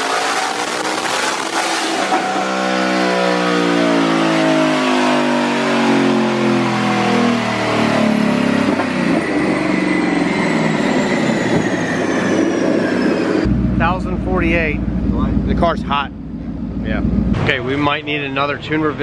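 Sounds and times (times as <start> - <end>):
car engine winding down: 0.0 - 18.7
high whine: 7.1 - 17.6.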